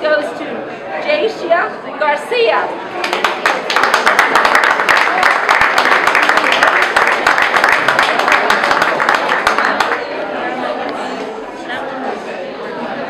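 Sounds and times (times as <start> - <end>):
audience applauding: 3.0 - 10.3.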